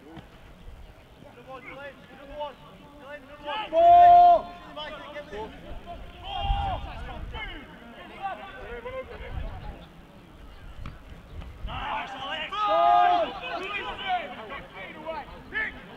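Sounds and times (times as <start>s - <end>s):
players shouting: 1.4s - 9.3s, 11.6s - 15.9s.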